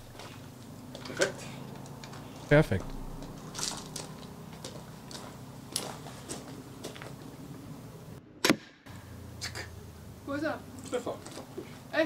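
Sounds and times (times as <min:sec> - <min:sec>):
crossbow firing snap: 0:08.4 - 0:08.8.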